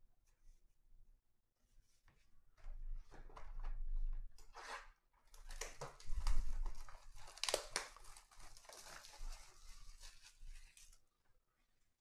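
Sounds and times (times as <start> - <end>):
wrapping crinkling and tearing: 5.4 - 11.0.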